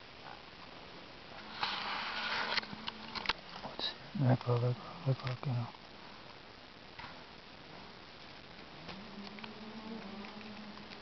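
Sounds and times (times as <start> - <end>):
small sharp clicks: 8.9 - 9.6.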